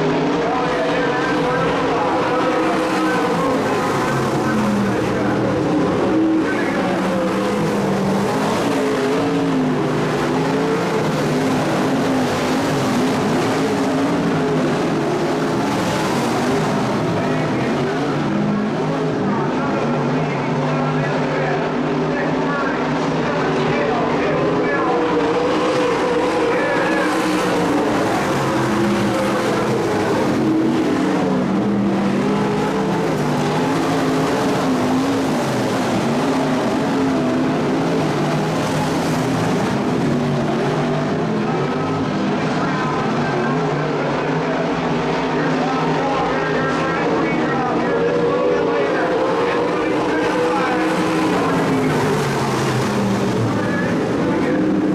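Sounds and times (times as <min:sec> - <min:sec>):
distant race car engines: 0:00.0 - 0:54.9.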